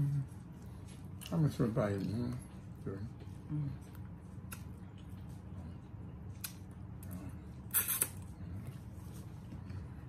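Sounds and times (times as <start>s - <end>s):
mouth sounds of eating: 0.0s - 9.0s
low background hum: 0.0s - 10.0s
noodle slurp: 7.7s - 8.2s.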